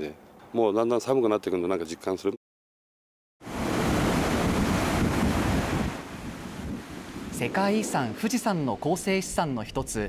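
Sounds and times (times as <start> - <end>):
wind buffeting microphone: 3.5 - 8.2.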